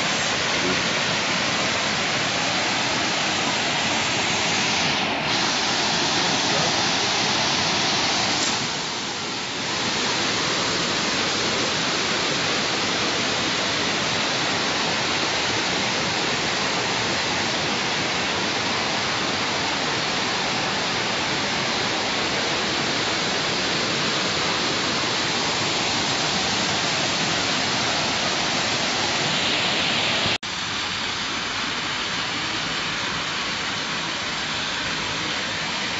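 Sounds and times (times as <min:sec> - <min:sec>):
fountain jets splashing: 0:00.0 - 0:35.9
water rushing over weirs: 0:00.0 - 0:35.9.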